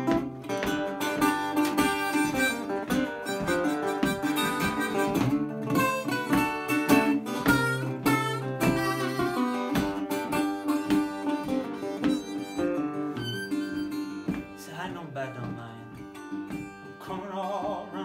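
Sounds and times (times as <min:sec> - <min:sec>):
resonator guitar accompaniment: 0:00.0 - 0:18.0
harmonica solo: 0:00.8 - 0:14.6.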